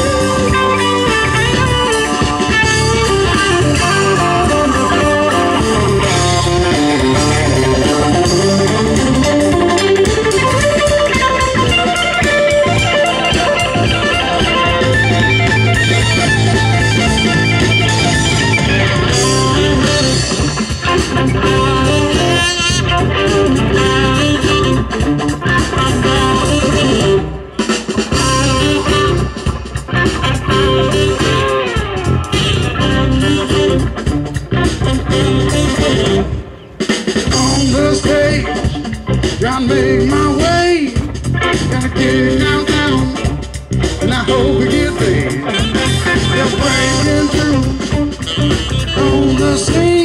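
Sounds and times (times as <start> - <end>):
bass guitar: 0.0 - 50.0
electric guitar: 0.0 - 50.0.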